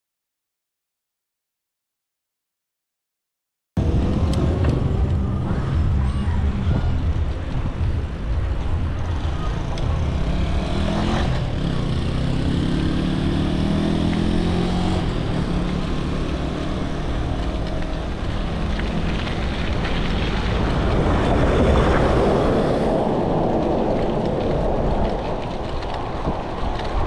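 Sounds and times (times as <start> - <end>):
bike tyres rumbling on asphalt: 3.8 - 27.0
wind on microphone: 3.8 - 27.0.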